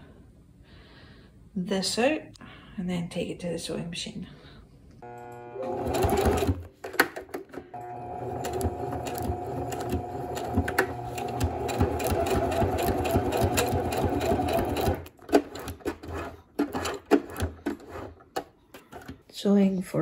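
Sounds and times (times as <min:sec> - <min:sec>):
electric sewing machine running: 0:05.0 - 0:06.7, 0:07.7 - 0:15.8.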